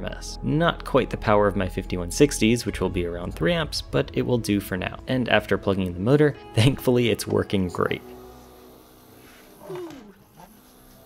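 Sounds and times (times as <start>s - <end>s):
stepper motor whine: 8.0s - 11.0s.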